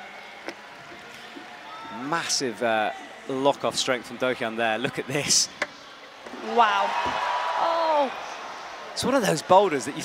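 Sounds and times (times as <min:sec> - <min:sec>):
venue background noise: 0:00.0 - 0:10.0.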